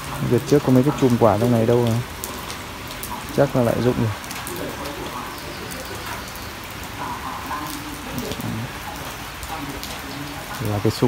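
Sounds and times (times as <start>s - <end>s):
rain falling on leaves: 0.0s - 11.0s.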